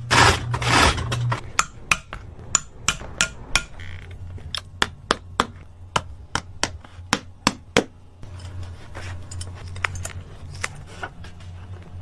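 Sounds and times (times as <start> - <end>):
hammer tapping: 1.5 - 3.8, 4.6 - 8.0.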